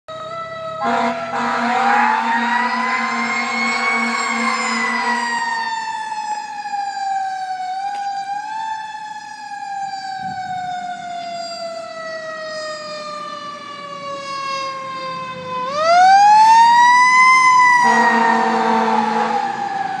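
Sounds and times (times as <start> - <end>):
fire engine siren wailing: 0.1 - 20.0
truck horn blasts: 0.8 - 5.3, 17.8 - 19.5.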